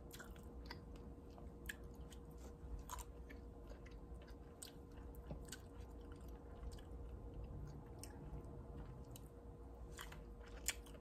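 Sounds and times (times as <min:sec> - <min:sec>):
chewing berries: 0:00.0 - 0:11.0.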